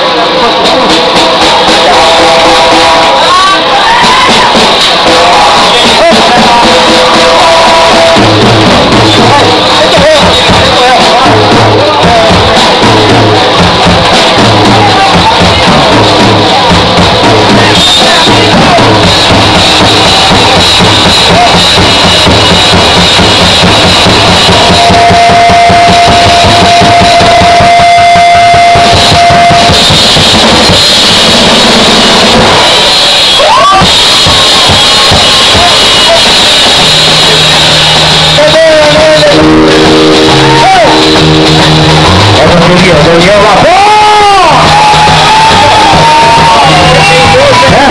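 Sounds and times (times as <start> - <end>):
rock band playing live: 0.0 - 47.9.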